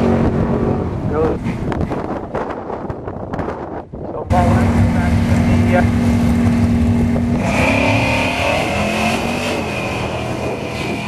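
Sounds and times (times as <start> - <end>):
drag race car engine: 4.3 - 11.0.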